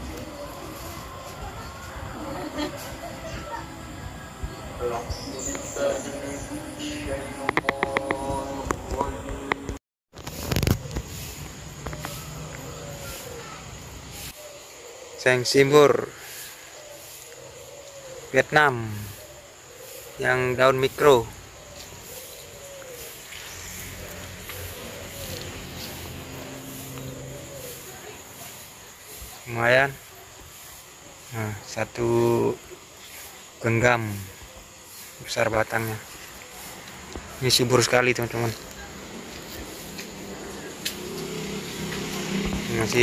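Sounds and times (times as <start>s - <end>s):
distant rising and falling calls: 0.0s - 43.0s.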